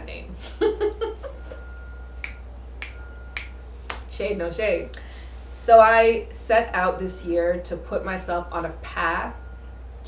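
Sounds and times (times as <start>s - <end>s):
finger snapping: 2.2s - 4.1s.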